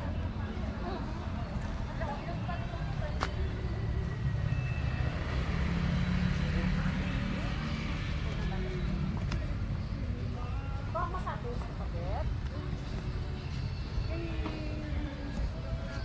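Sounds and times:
vehicle passing with low rumble: 0:00.0 - 0:10.7.

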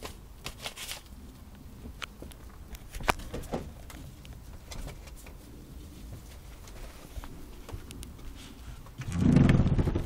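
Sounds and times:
paper rustling and crinkling: 0:00.0 - 0:01.2.

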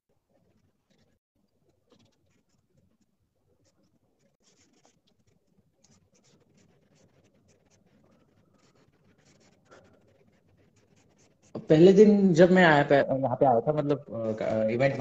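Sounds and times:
charcoal scratching on paper: 0:01.9 - 0:12.6.

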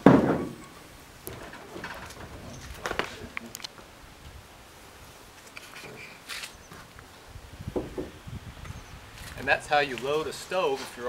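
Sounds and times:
soft low thumps: 0:07.4 - 0:09.1.

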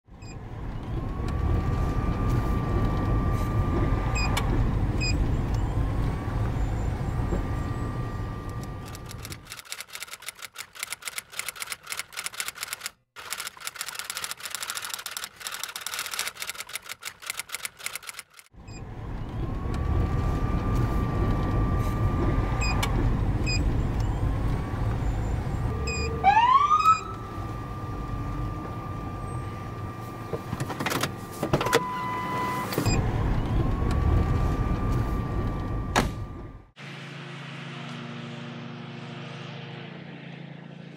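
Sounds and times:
vehicle rumble: 0:00.1 - 0:40.9
siren yelp: 0:00.4 - 0:09.1, 0:18.7 - 0:36.7
rapid typewriter-like clicking: 0:08.9 - 0:18.5.

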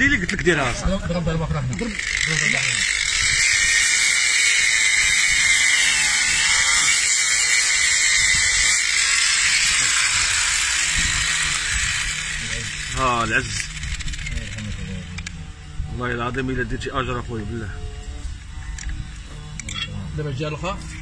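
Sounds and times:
angle grinder whining: 0:00.0 - 0:21.0.

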